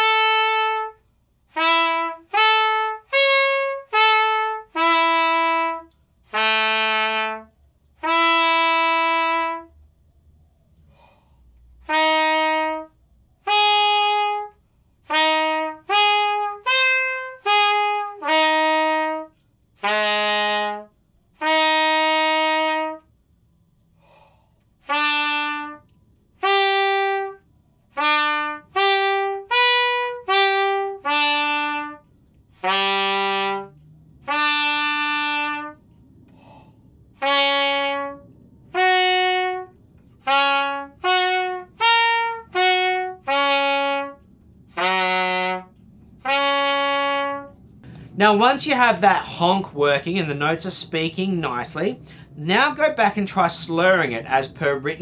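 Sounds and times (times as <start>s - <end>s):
trumpet playing short honked notes: 0.0s - 9.7s, 11.8s - 23.1s, 24.8s - 35.8s, 37.2s - 47.5s.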